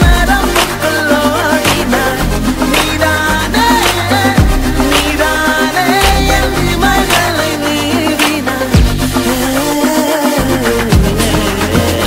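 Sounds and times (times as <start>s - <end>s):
pop music: 0.0s - 12.0s.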